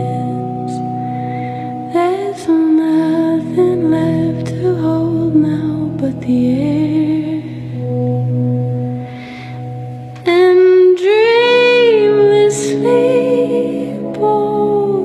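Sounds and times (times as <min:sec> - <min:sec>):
woman singing slow song: 0:00.0 - 0:08.3, 0:10.1 - 0:15.0
soft sustained accompaniment: 0:00.0 - 0:15.0.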